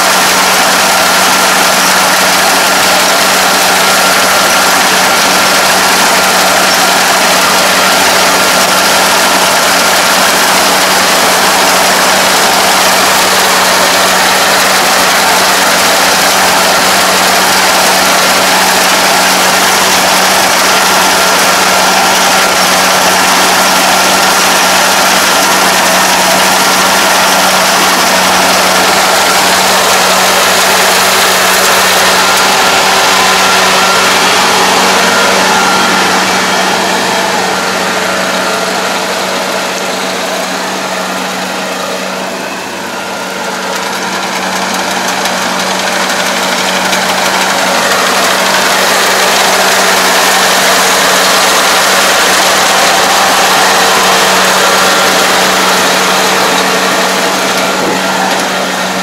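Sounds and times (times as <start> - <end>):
combine harvester engine droning: 0.0 - 59.0.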